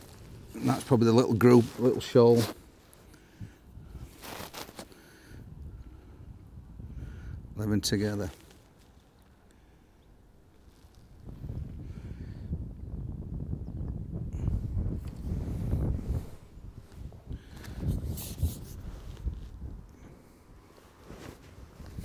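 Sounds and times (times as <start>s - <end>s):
wind buffeting microphone: 0.0s - 8.3s, 10.1s - 22.0s.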